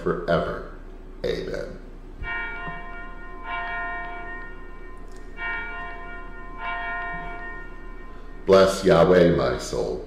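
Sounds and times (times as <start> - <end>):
small bell ringing: 2.2 - 8.9.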